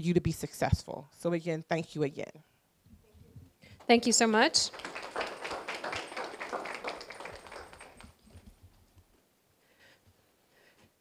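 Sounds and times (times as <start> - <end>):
audience applauding: 3.9 - 8.2.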